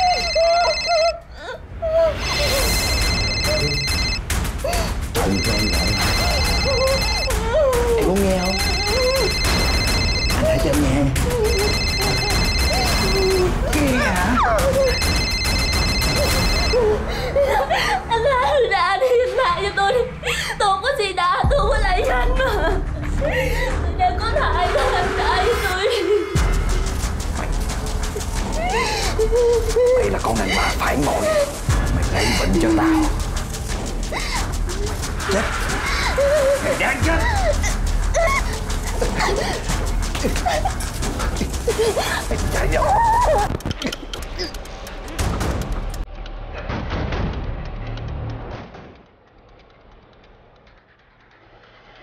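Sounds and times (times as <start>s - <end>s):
telephone ringing electronic trill: 0.0s - 1.1s, 2.3s - 4.3s, 5.2s - 7.4s, 8.4s - 13.6s, 14.9s - 16.8s
woman crying and whimpering: 0.0s - 26.4s, 28.2s - 44.6s
background music: 0.0s - 48.9s.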